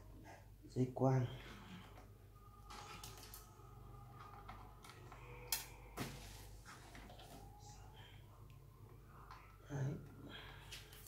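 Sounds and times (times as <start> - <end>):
low steady hum: 0.0 - 11.0
audio cables rustling and clicking: 1.9 - 7.5.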